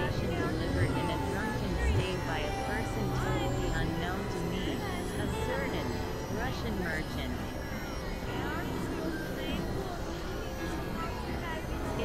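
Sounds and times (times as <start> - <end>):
low rumble and hiss: 0.0 - 12.0.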